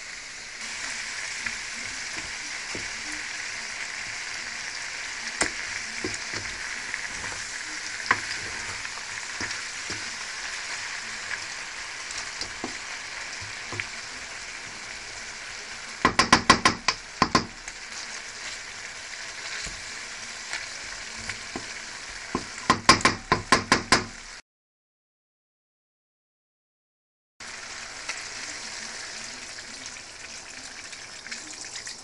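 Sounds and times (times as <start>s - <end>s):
potatoes sizzling in hot oil: 0.0s - 24.4s, 27.4s - 32.0s
wooden spatula knocking on pan: 2.1s - 3.0s, 5.4s - 6.6s, 8.1s - 8.8s, 16.0s - 17.6s, 21.2s - 24.2s.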